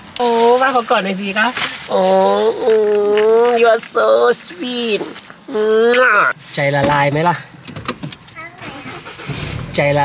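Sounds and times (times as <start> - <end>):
car engine starting and idling: 7.6 - 10.0.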